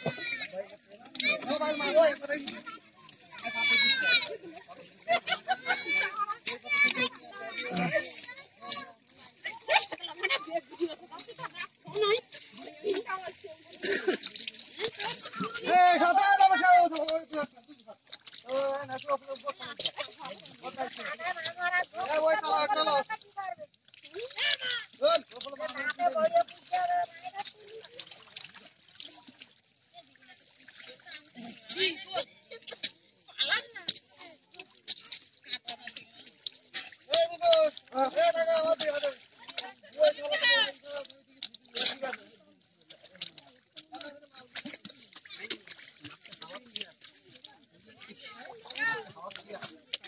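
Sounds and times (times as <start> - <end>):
people talking and calling out: 0.0 - 50.0
sloshing in shallow muddy water: 0.0 - 50.0.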